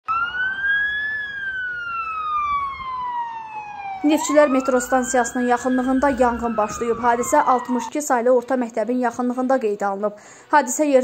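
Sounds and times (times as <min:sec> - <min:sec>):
emergency vehicle siren wailing: 0:00.0 - 0:08.1.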